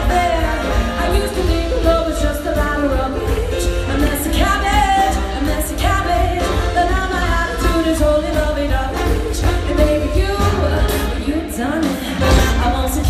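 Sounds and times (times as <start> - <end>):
drums: 0.0 - 13.0
woman singing lead vocal: 0.0 - 13.0.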